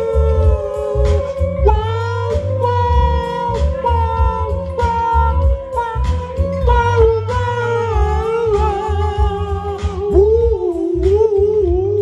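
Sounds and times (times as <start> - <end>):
music with pulsing bass beat: 0.0 - 12.0.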